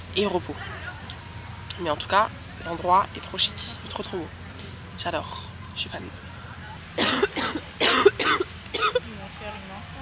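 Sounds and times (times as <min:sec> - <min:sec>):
steady low hum: 0:00.0 - 0:10.0
person coughing: 0:07.0 - 0:09.0.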